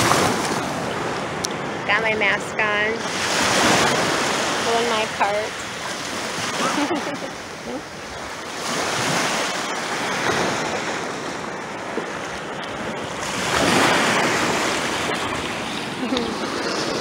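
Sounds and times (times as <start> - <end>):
small waves washing on beach: 0.0 - 17.0.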